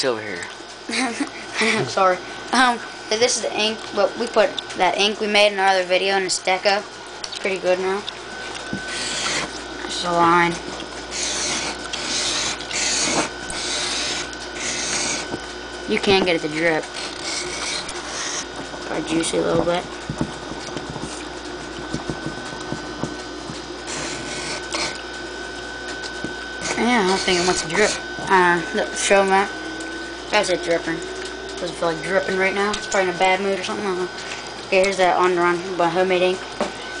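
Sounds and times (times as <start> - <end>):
thin high hum: 0.0 - 37.0.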